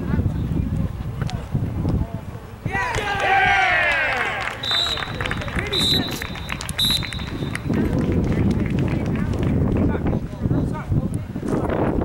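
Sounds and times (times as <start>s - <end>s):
low rumbling noise: 3.4s - 12.0s
referee whistle blasts: 4.6s - 7.6s.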